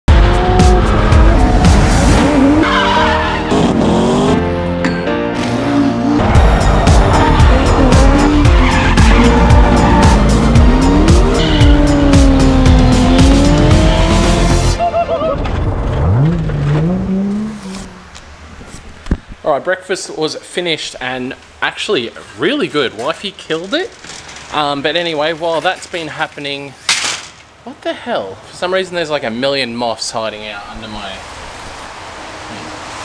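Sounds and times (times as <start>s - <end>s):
car engines revving: 0.1s - 4.7s, 5.4s - 14.8s, 15.4s - 19.1s
music track: 0.1s - 16.9s
tyres squealing: 6.8s - 14.1s.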